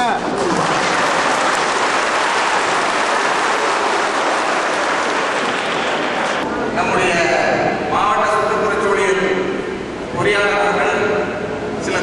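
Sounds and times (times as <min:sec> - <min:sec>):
crowd applauding: 0:00.3 - 0:06.4.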